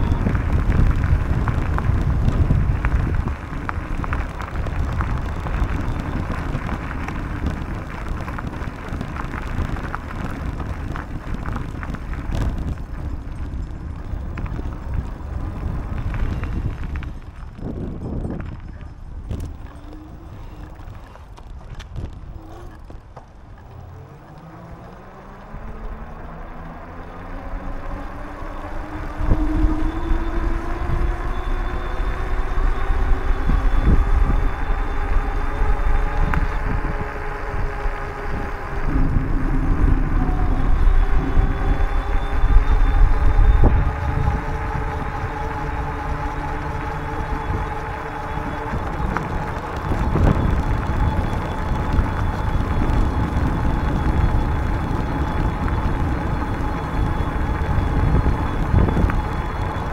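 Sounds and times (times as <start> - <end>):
rising hum of moving bicycle: 0.0 - 59.9
wind buffeting microphone: 0.0 - 59.9.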